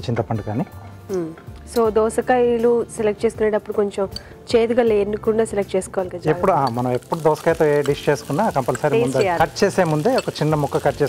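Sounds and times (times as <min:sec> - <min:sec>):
food sizzling in a pan: 0:06.2 - 0:11.0
person speaking: 0:06.3 - 0:11.0.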